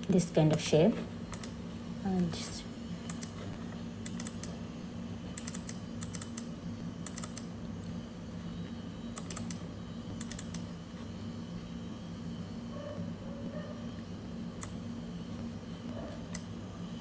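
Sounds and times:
steady low hum: 0.0s - 17.0s
computer keyboard keys clicking: 5.4s - 7.5s, 9.2s - 9.6s, 10.2s - 10.6s.

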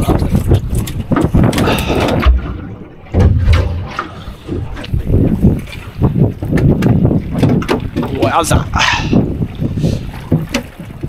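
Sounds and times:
water slapping boat hull: 0.0s - 11.0s
wind buffeting microphone: 0.0s - 11.0s.

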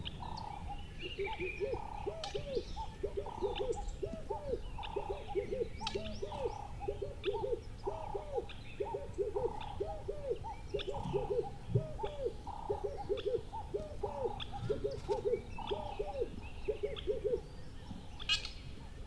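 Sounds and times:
owl hooting: 0.0s - 17.5s
small birds chirping: 0.0s - 19.0s.

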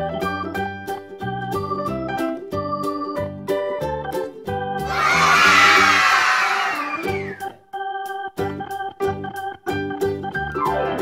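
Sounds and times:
light organ music: 0.0s - 11.0s
children shouting and cheering: 4.8s - 7.4s.

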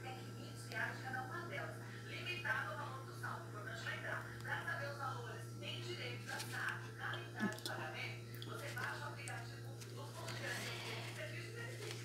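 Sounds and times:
faint voices: 0.0s - 12.0s
steady low hum: 0.0s - 12.0s.

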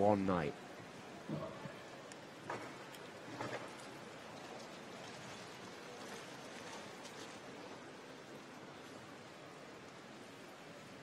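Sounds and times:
indoor swimming arena background noise: 0.0s - 11.0s.

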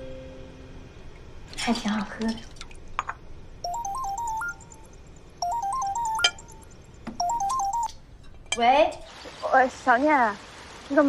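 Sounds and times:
phone ringtone beeps: 3.7s - 8.0s.

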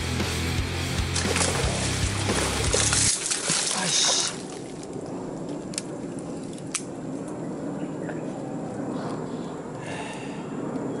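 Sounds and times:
background music: 0.0s - 3.2s
fish splashing in water: 1.1s - 4.9s.

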